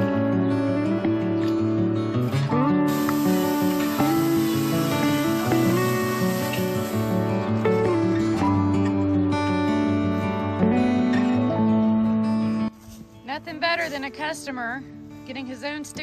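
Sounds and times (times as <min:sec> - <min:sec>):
acoustic guitar music: 0:00.0 - 0:16.0
steady high hiss: 0:02.8 - 0:07.6.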